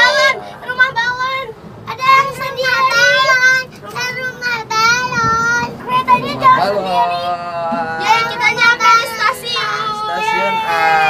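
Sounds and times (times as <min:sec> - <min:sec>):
child singing: 0:00.0 - 0:07.1, 0:07.8 - 0:10.9.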